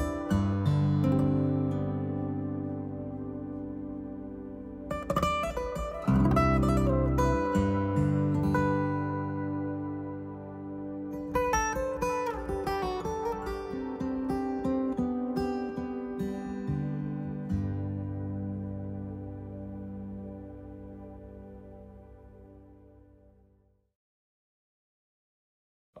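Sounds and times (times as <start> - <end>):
fingerstyle acoustic guitar: 0.0 - 22.0.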